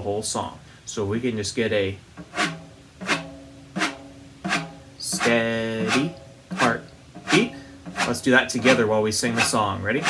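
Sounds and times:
frame drum taps: 0:02.2 - 0:09.6.

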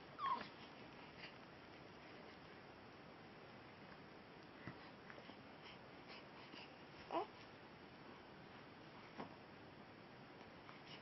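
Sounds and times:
baby squeaking: 0:00.2 - 0:00.4.

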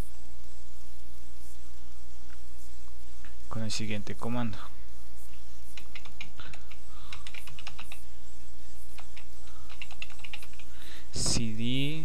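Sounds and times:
steady low hum: 0:00.0 - 0:12.0
keyboard key clicks: 0:05.8 - 0:08.0, 0:09.0 - 0:10.7.

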